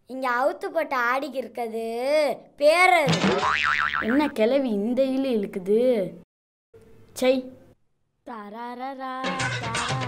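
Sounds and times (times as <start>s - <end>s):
cartoon boing sound effect: 3.2s - 4.3s.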